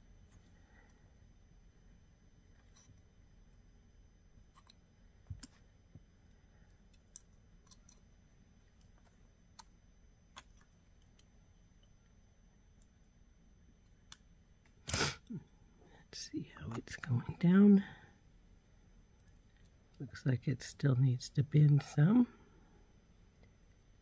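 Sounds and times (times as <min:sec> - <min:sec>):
loud puff: 0:14.8 - 0:15.3.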